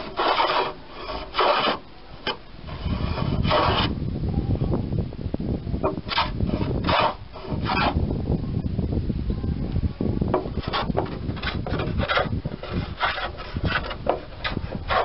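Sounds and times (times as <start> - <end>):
hand plane rasping on wood: 0.0 - 1.8, 2.7 - 3.9, 6.1 - 8.0, 10.6 - 15.0.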